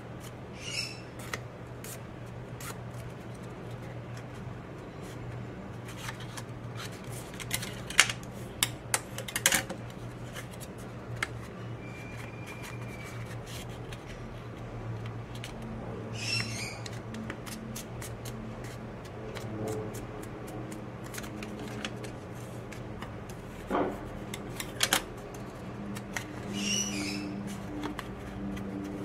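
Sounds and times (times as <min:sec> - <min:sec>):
paper crackling and creasing: 0:16.8 - 0:26.6, 0:27.3 - 0:29.0
paper rustle: 0:16.9 - 0:26.5.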